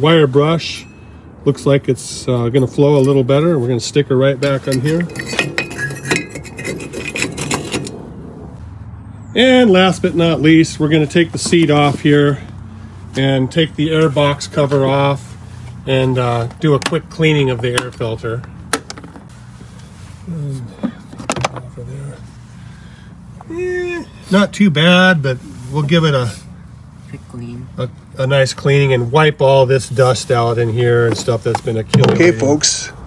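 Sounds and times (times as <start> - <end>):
metal scraping: 4.3 - 8.5.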